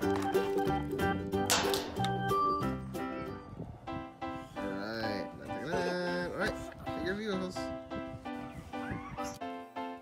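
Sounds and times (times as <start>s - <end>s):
background music repeated notes: 0.0s - 10.0s.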